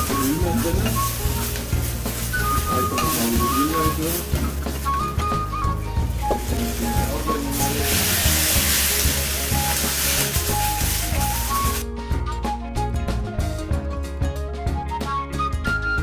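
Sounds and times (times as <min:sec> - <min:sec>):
potato peels sizzling in oil: 0:00.0 - 0:11.8
background music with melody: 0:00.0 - 0:16.0.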